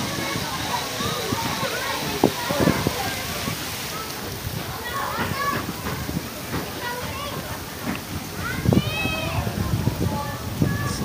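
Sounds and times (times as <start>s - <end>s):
children chattering and calling: 0.0s - 11.0s
steady hiss: 0.0s - 11.0s.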